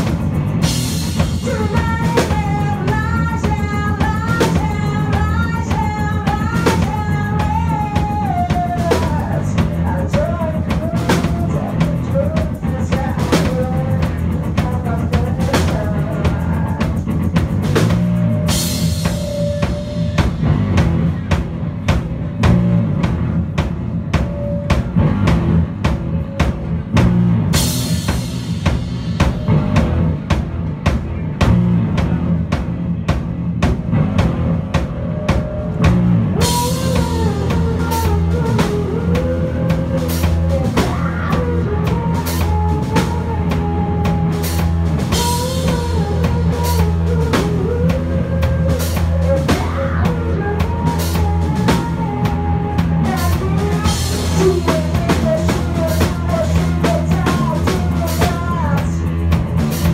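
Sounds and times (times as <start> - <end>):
drum kit: 0.0 - 59.9
electric bass: 0.0 - 59.9
woman singing: 1.2 - 20.4, 35.2 - 59.2.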